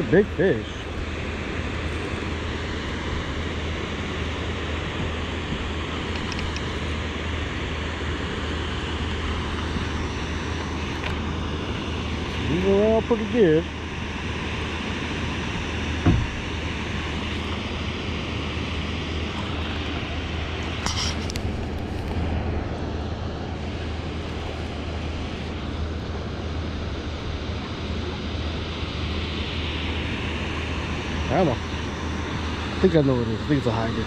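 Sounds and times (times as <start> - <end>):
water roaring through spillway: 0.0 - 34.0.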